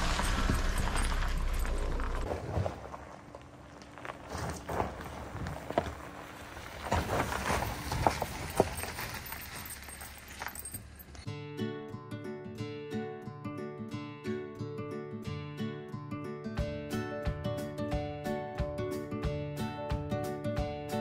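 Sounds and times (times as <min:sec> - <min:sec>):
tyres crunching on gravel: 0:00.0 - 0:11.3
acoustic guitar music: 0:11.2 - 0:21.0.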